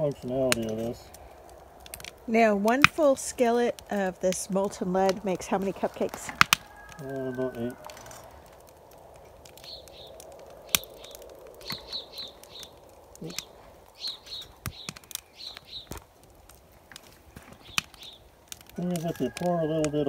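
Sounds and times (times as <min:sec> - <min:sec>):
sharp clicks and ticks: 0:00.1 - 0:20.0
small bird chirping: 0:09.4 - 0:16.0, 0:17.3 - 0:20.0.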